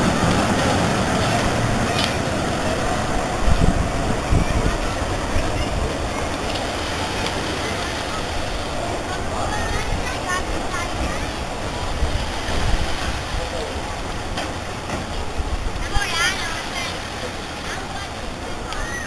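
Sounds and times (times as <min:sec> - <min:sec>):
tram rumbling on rails: 0:00.0 - 0:16.3
crowd chatter: 0:00.0 - 0:19.0.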